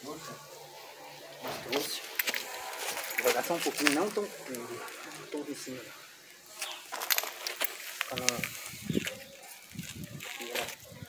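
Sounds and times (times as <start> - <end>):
hand scraping stony soil: 1.3 - 10.9
pebbles clicking: 6.3 - 9.2.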